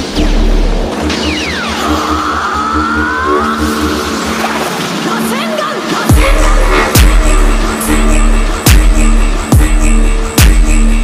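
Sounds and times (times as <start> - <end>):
pulsing sub bass: 0.0 - 4.9, 6.1 - 11.0
held synth chords: 0.0 - 11.0.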